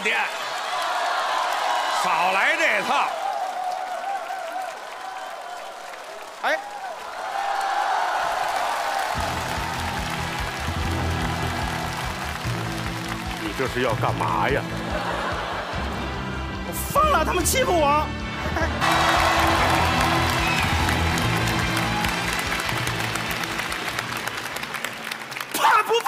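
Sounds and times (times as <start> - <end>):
audience laughing and applauding: 0.0 - 26.0
background music: 8.7 - 26.0.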